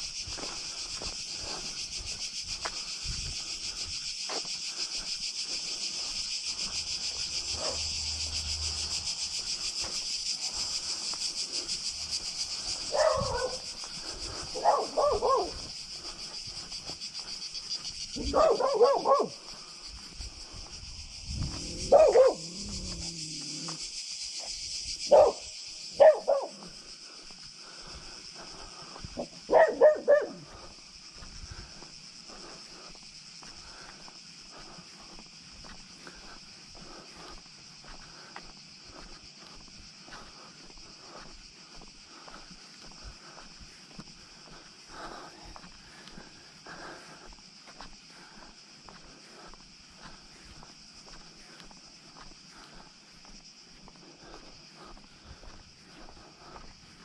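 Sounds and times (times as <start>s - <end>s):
cicadas chirping: 0.0s - 57.0s
dog barking: 7.5s - 7.9s, 12.9s - 13.7s, 14.5s - 15.6s, 18.2s - 19.4s, 21.8s - 23.1s, 25.1s - 26.7s, 29.5s - 30.5s
dog growling: 21.5s - 23.8s.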